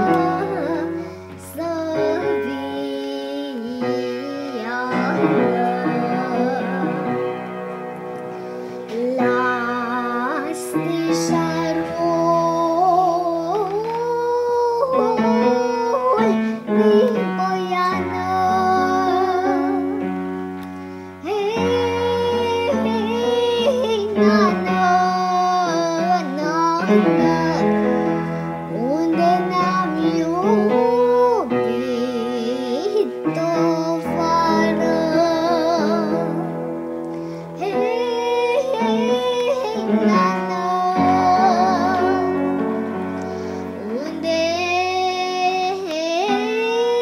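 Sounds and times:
girl singing: 0.0s - 47.0s
instrumental accompaniment: 0.0s - 47.0s.

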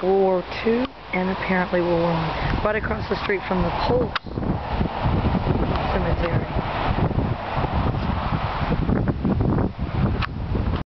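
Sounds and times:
wind buffeting microphone: 0.0s - 10.8s.

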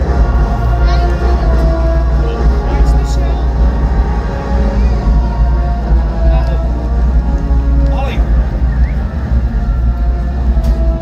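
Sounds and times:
dark dramatic music: 0.0s - 11.0s
deep low rumble: 0.0s - 11.0s.

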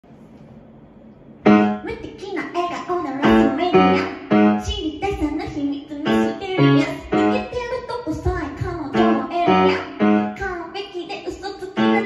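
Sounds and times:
piano chord ringing: 1.4s - 1.9s, 9.0s - 10.4s.

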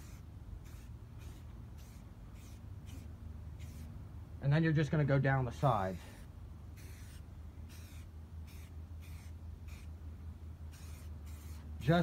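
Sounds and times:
aerosol spray can hissing: 0.0s - 3.9s, 6.8s - 9.9s, 10.7s - 11.7s
steady low hum: 0.0s - 12.0s.

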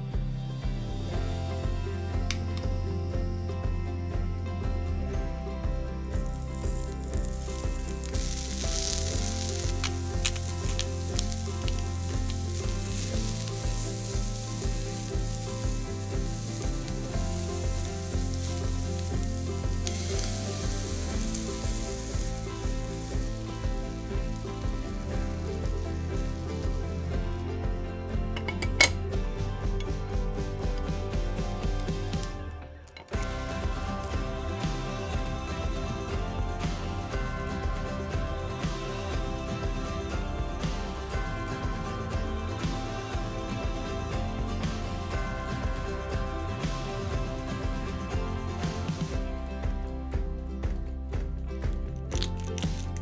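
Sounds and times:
shrimp sizzling in oil: 6.1s - 32.4s, 33.1s - 49.3s
egg poured into pan: 6.3s - 27.2s.

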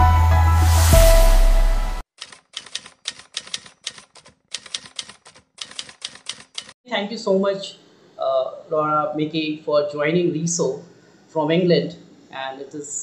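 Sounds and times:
intro music: 0.0s - 2.0s
typewriter key clicks: 2.2s - 6.8s.

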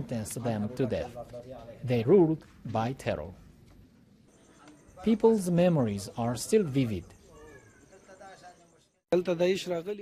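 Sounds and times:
narration: 0.0s - 10.0s
faint voices talking: 4.2s - 10.0s.

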